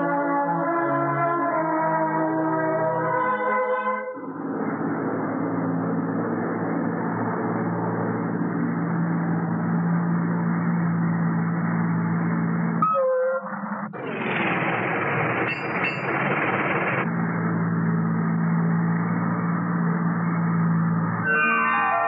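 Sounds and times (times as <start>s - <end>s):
bus running rumble: 0.0s - 22.0s.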